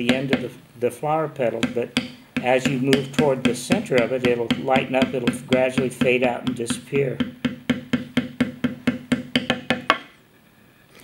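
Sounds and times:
mallet tapping leather stamp: 0.0s - 0.6s, 1.4s - 10.1s.

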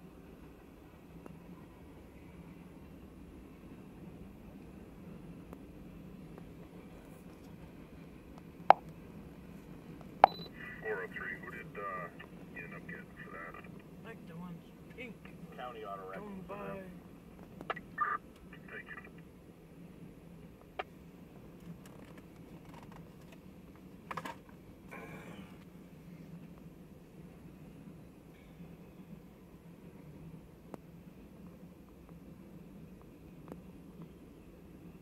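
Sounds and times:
brief high beep: 10.2s - 10.6s
dispatcher voice over radio: 10.5s - 16.9s, 17.7s - 19.2s.

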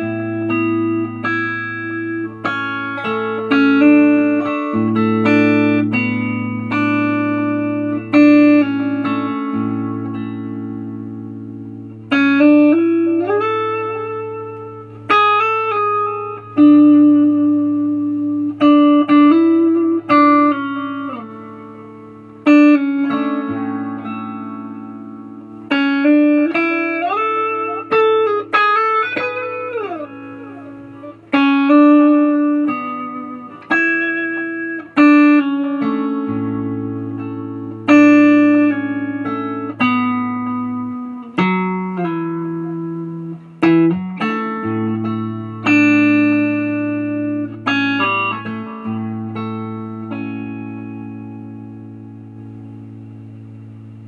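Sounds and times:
electric guitar melody: 0.0s - 54.0s.

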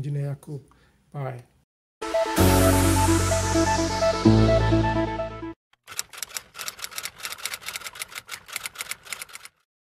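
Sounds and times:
rapid clicking sound effect: 5.8s - 9.6s.

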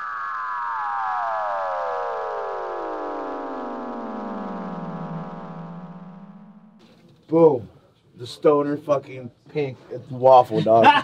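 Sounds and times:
synthesized downward sweep: 0.0s - 7.5s.

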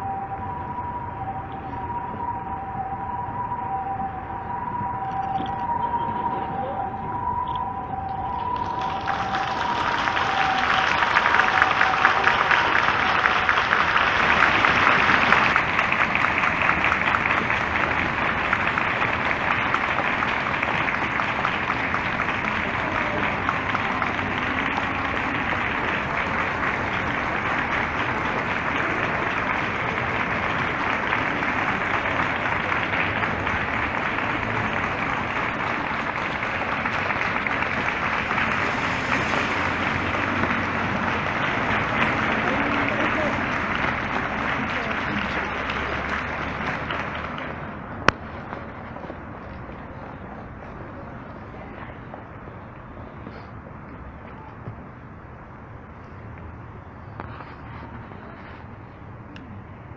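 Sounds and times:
crowd clapping: 4.8s - 52.3s.

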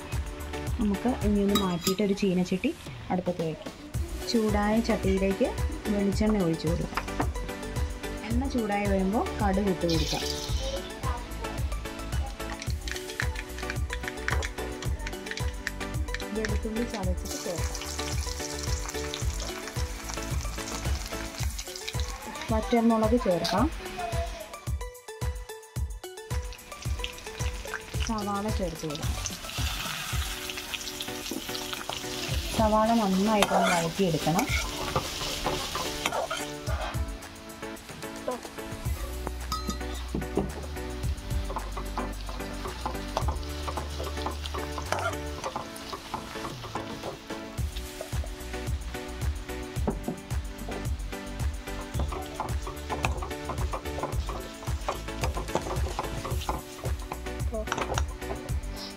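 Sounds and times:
background music with steady beat: 0.0s - 58.9s
garlic sizzling in hot oil: 7.6s - 24.6s, 26.2s - 58.9s
metal spatula scraping pan: 33.4s - 37.0s.

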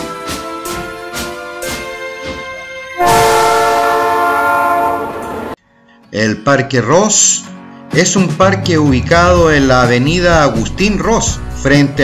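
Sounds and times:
train whistle blast: 3.0s - 5.6s.

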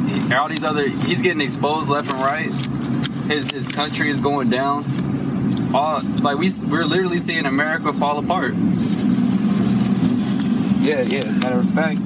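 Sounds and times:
car engine and road noise: 0.0s - 12.0s.

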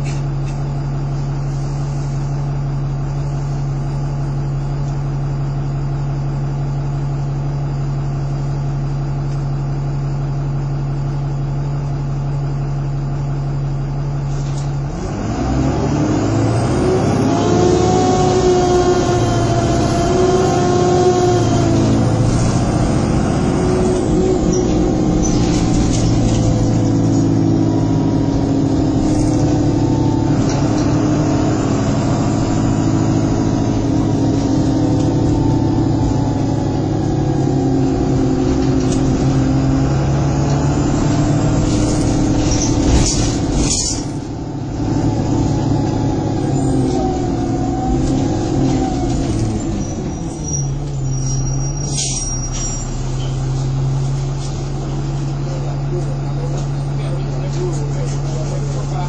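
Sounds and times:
bus engine: 0.0s - 59.0s.

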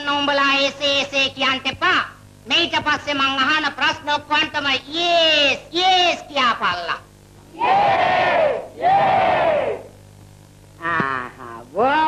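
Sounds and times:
group shouting in unison: 7.5s - 9.9s.

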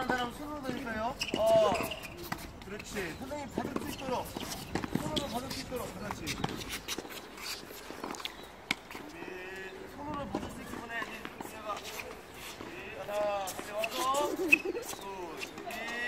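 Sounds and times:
tennis balls struck by rackets: 0.0s - 7.0s
balls bouncing on hard court: 0.0s - 7.1s
people's voices: 8.9s - 16.0s.

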